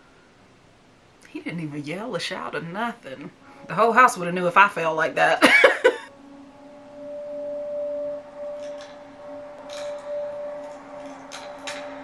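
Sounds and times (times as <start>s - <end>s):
low sustained drone: 3.2s - 12.0s.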